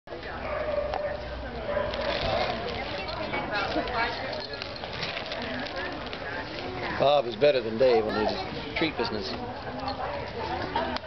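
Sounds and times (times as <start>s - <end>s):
people talking: 0.1s - 11.0s.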